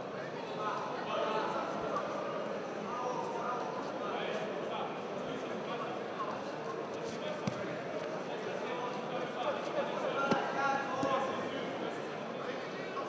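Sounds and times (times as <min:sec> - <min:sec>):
echoing indistinct voices: 0:07.4 - 0:13.0.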